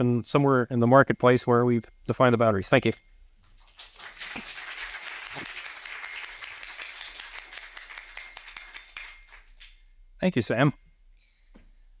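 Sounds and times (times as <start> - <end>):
audience applauding: 3.7 - 9.7.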